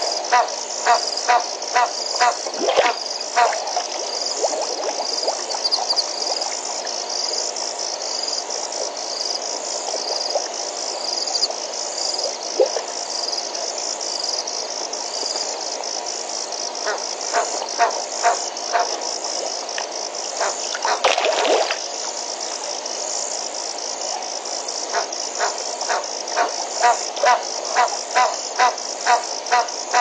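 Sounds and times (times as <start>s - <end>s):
frogs calling: 0.0s - 30.0s
pulsing insect trill: 0.0s - 30.0s.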